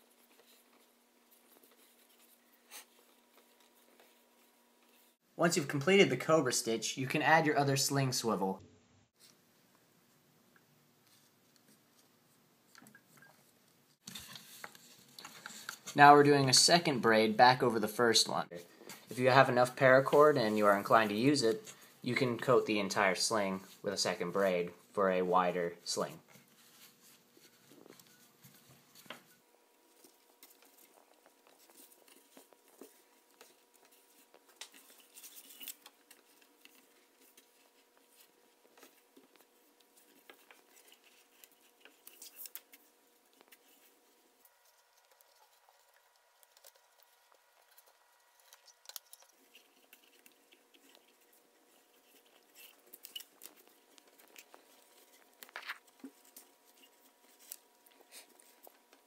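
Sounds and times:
cord rustling: 0.0 - 5.2, 25.8 - 59.0.

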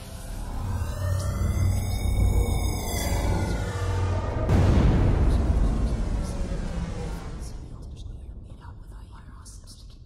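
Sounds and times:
low rumble: 0.0 - 10.0
person whispering: 7.4 - 10.0.

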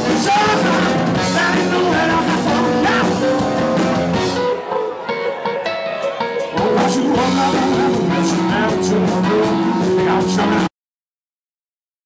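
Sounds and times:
live rock band playing: 0.0 - 10.7.

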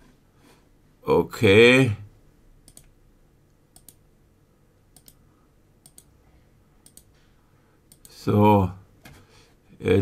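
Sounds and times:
computer mouse clicking: 2.6 - 2.9, 3.7 - 4.0, 5.0 - 5.2, 5.8 - 6.1, 6.8 - 7.1, 7.9 - 8.2.

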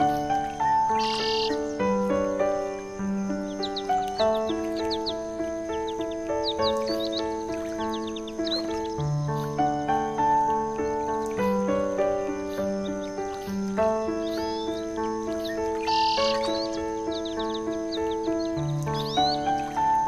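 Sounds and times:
bird-like chirps: 0.0 - 20.0
instrumental music of held notes: 0.0 - 20.0.

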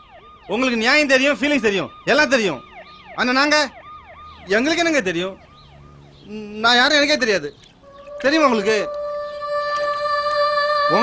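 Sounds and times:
faint siren: 0.0 - 7.1, 7.8 - 11.0
man speaking loudly: 8.2 - 8.9.

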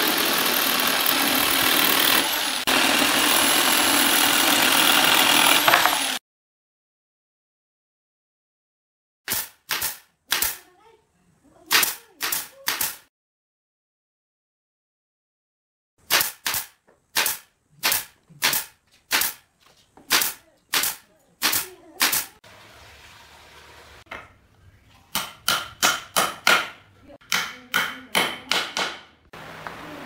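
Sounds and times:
hammer striking nails into wood: 5.6 - 6.0, 25.2 - 29.2.

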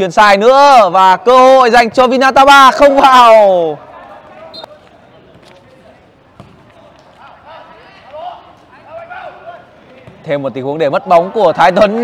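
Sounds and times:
faint shouts of players: 2.9 - 12.0
football thuds: 4.7 - 7.3, 9.8 - 10.4.

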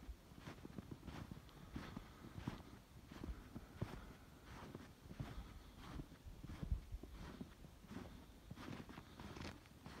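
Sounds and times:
footsteps crunching in snow: 0.0 - 10.0.

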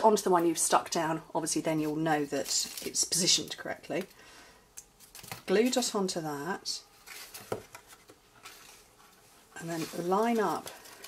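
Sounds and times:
soft handling noises: 6.8 - 11.0.

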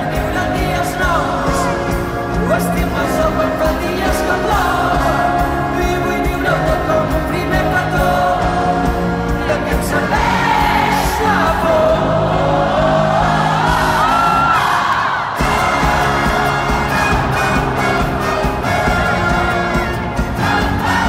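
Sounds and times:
live pop band: 0.0 - 21.0
person singing: 0.0 - 21.0
crowd whooping: 12.4 - 21.0.

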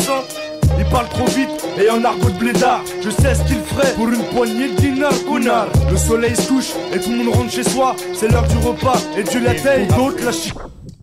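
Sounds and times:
rapping over hip-hop beat: 0.0 - 10.6.

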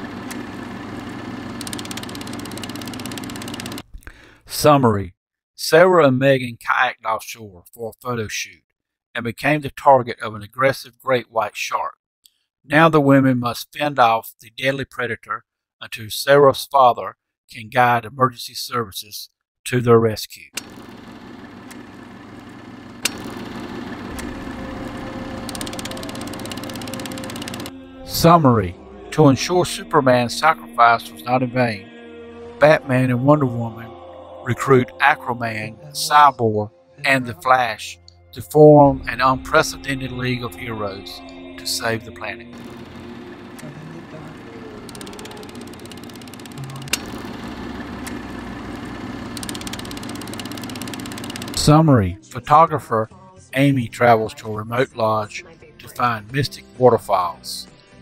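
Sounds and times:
film projector motor hum: 0.0 - 3.9, 20.6 - 27.9, 42.5 - 51.8
fast ticking rattle: 1.6 - 3.8, 23.0 - 27.7, 44.8 - 51.7
projector clattering: 20.6 - 27.7.

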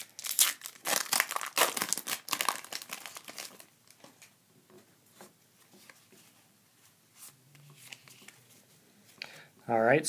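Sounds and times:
cards rustling and sliding: 7.1 - 8.7.

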